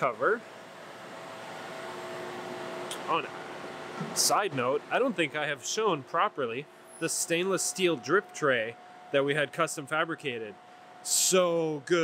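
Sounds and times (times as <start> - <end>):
machinery humming and hissing: 0.0 - 12.0.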